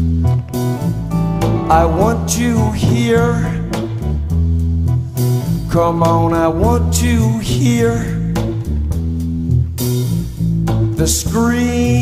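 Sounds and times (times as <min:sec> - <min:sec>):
sustained organ chords: 0:00.0 - 0:05.3
electric piano bass line: 0:00.0 - 0:12.0
rock band playing: 0:00.2 - 0:05.7.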